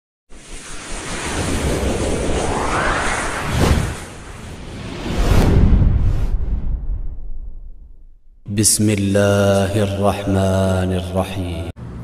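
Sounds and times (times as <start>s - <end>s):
whoosh: 0.3s - 8.5s
low rumble: 0.5s - 8.6s.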